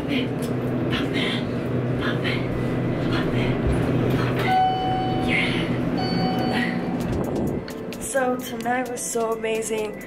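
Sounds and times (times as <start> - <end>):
elevator mechanical hum: 0.0 - 10.0
held tone: 4.5 - 7.0.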